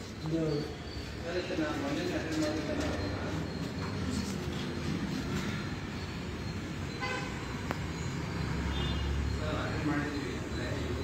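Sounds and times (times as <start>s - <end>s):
road traffic rumble: 0.0s - 11.0s
vehicle horn toot: 6.9s - 7.6s.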